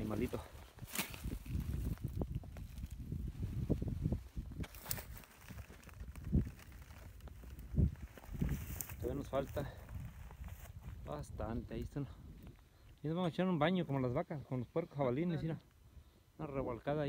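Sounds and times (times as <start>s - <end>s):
wind on phone microphone: 0.0s - 12.7s.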